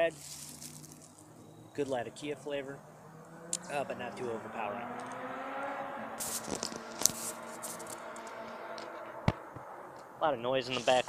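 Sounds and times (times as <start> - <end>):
road traffic drone: 0.0 - 11.0
hissy rustles: 6.2 - 8.0.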